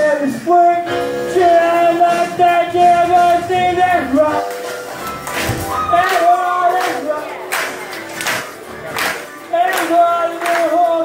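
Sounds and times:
man singing through a pa: 0.0 - 4.5, 5.8 - 7.4, 9.5 - 11.0
backing track with percussion: 0.4 - 11.0.

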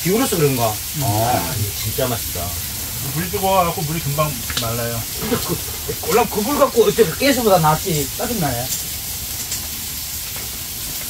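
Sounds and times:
pork sizzling on a grill pan: 0.0 - 11.0.

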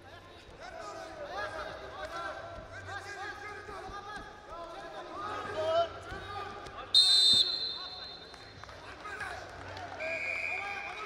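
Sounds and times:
referee's whistle blast: 7.0 - 8.3.

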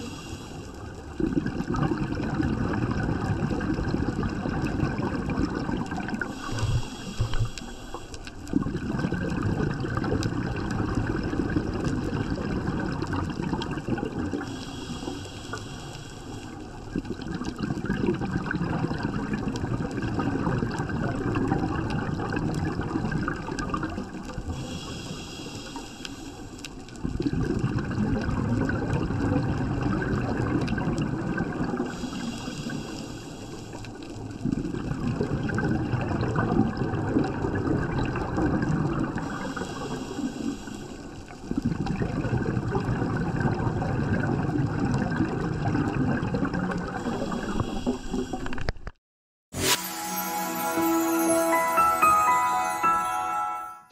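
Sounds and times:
regulator inhale hissing: 0.0 - 0.9, 6.2 - 8.3, 14.4 - 16.6, 24.6 - 26.6, 31.9 - 33.9, 39.2 - 41.3, 47.0 - 48.6
exhaled air bubbling: 0.7 - 7.7, 8.3 - 15.8, 16.4 - 25.6, 26.7 - 48.9.

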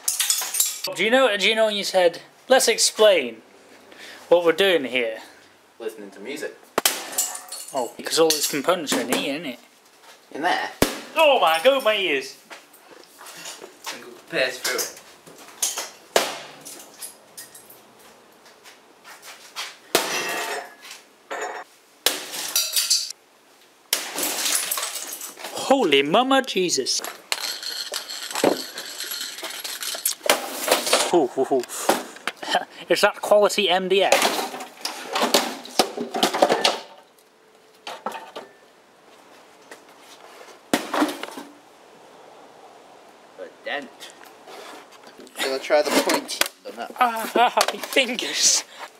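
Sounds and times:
rattling and clinking parts: 0.0 - 0.9, 22.5 - 23.1, 24.2 - 25.5, 27.0 - 31.1
cabinets clattering onto stone: 27.3 - 31.1.

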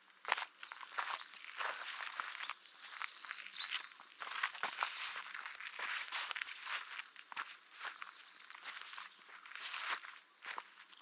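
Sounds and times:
footsteps crunching on dirt trail: 0.1 - 11.0.

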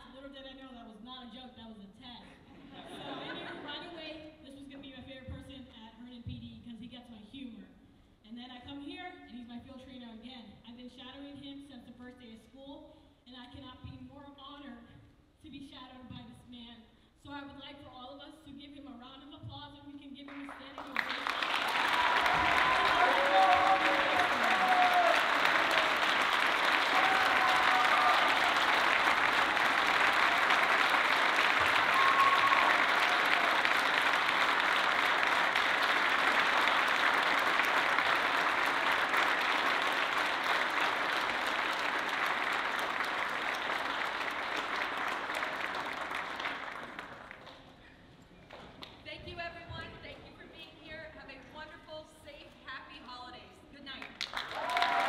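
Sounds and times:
audience applauding: 20.4 - 47.6, 54.2 - 55.0
shouts and cheers: 21.6 - 30.9, 31.6 - 33.9, 54.4 - 55.0.

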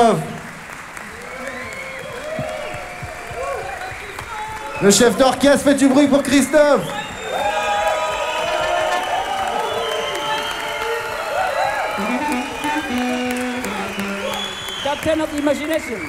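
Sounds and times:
audience applauding and cheering: 0.0 - 16.0
band playing loose notes: 7.6 - 15.1
low instrument long notes: 8.2 - 14.6.

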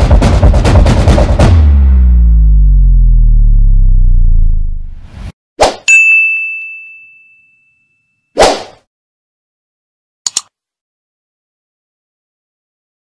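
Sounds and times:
deep low falling tone: 1.4 - 5.3
bright bell-like ding: 5.9 - 8.2.

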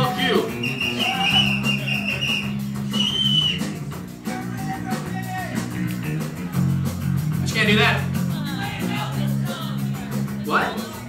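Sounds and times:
punk rock band playing live: 0.0 - 11.0
high held tone: 0.5 - 5.2.

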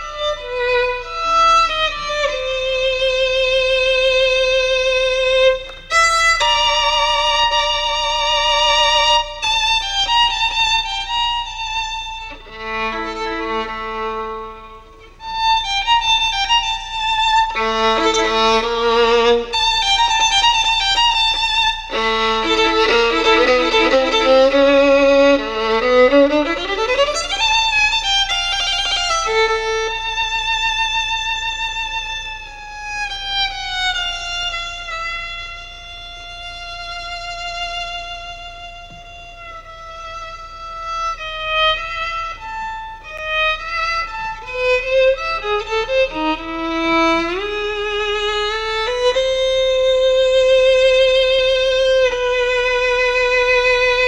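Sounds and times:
solo violin bowed: 0.0 - 54.0.

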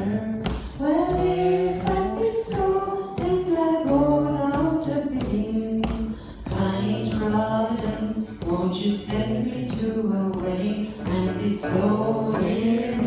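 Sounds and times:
woman singing into a microphone: 0.0 - 13.0.

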